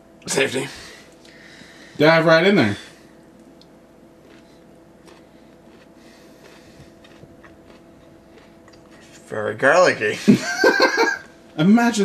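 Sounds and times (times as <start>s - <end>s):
steady low hum: 0.0s - 12.0s
chewing crunchy food: 3.4s - 9.3s.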